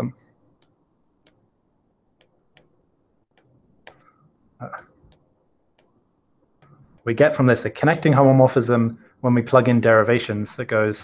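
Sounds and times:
stylus tapping on glass screen: 0.5 - 7.2.

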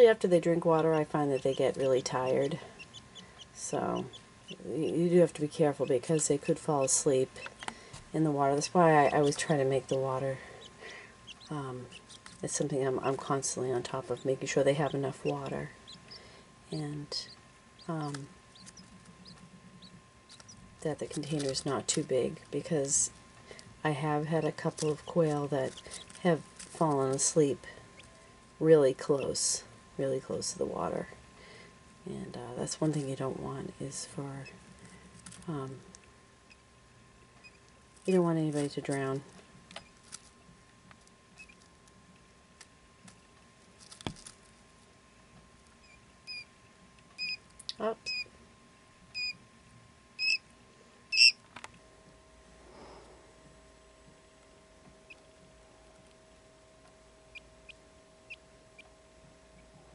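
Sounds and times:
quail chick cheeping: 1.2 - 5.0, 9.0 - 12.4, 14.2 - 16.4, 17.2 - 20.6, 45.8 - 46.5, 47.2 - 47.4, 48.0 - 48.3, 49.2 - 49.4, 50.2 - 50.4, 51.1 - 51.4, 57.3 - 58.9.

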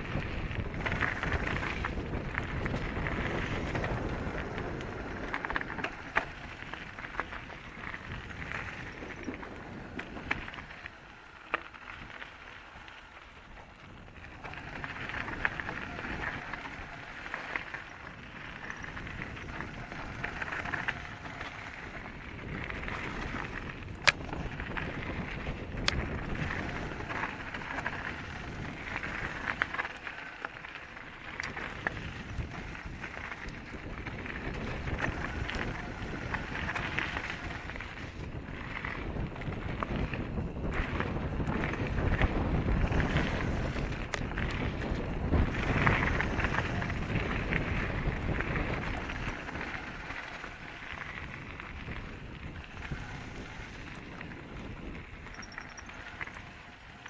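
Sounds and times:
wind on microphone: 0.0 - 12.5, 13.4 - 57.0
bike tyre rumble on gravel: 0.0 - 57.0
bike knocks and rattles: 14.3 - 57.0.

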